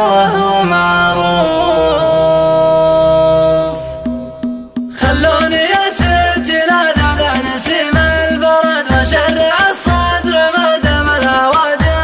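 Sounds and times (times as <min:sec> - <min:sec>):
man singing a long note: 0:00.0 - 0:11.9.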